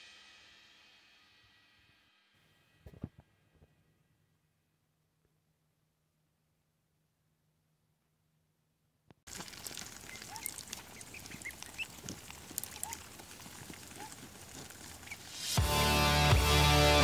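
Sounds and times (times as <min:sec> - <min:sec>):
ducklings peeping: 0:09.3 - 0:15.4
loud music: 0:15.6 - 0:17.0.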